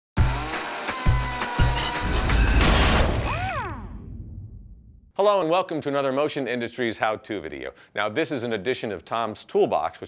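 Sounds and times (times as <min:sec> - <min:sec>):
loud crash burst: 0:02.5 - 0:04.7.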